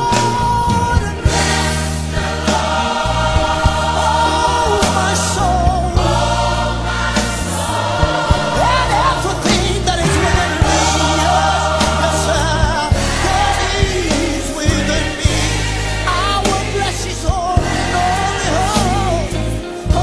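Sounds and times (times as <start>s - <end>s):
choir singing over band: 0.0s - 20.0s.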